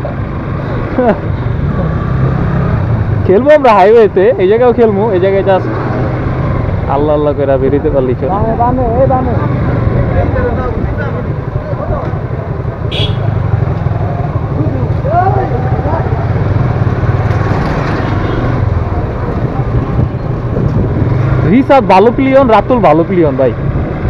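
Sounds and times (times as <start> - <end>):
motorcycle engine running: 8.3 - 22.0.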